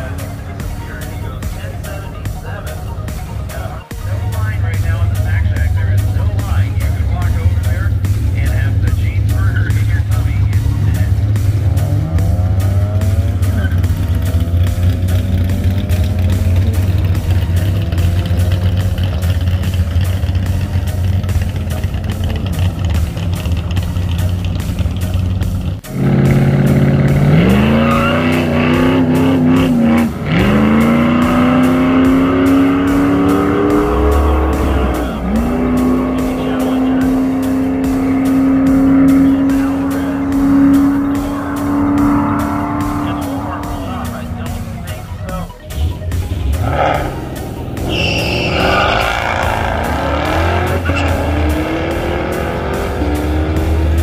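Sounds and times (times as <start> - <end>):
drag car engines rumbling: 0.0 - 54.0
engine revving and accelerating: 0.0 - 54.0.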